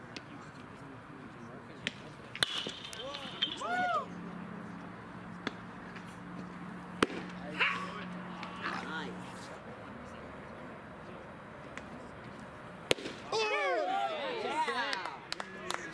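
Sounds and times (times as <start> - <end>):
voices shouting: 2.9 - 4.2, 13.2 - 15.2
baseball smacking into mitt: 7.0 - 7.4, 12.9 - 13.3.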